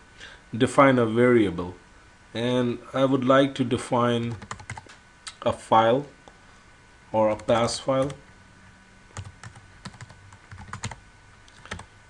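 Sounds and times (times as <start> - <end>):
computer keyboard typing: 4.3 - 4.9, 7.3 - 8.2, 9.2 - 11.9.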